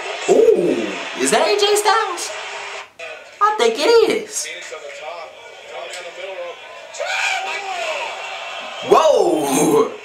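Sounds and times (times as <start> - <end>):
crowd shouting: 5.4 - 10.0.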